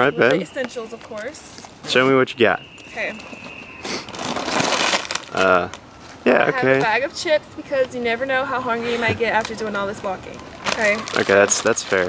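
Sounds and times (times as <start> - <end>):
plastic bag rustling and crinkling: 4.0 - 6.8, 10.6 - 12.0.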